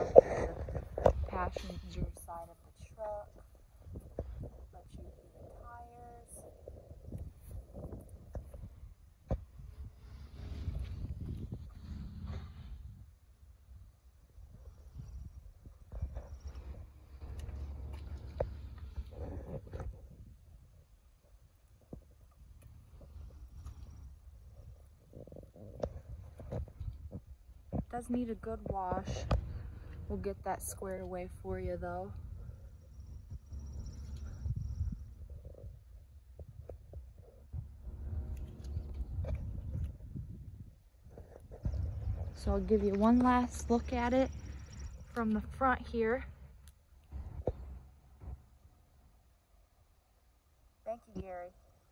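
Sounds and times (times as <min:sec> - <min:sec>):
wind rumble on microphone: 0:00.0 - 0:49.1
footsteps on pavement: 0:16.4 - 0:19.7.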